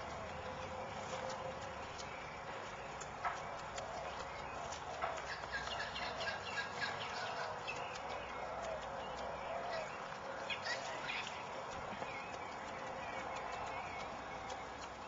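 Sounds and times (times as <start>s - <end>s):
birds chirping: 0.0s - 15.0s
sharp clicks: 0.4s - 15.0s.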